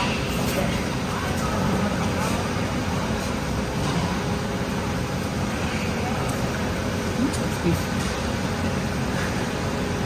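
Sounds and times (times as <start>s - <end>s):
air and fan noise: 0.0s - 10.0s.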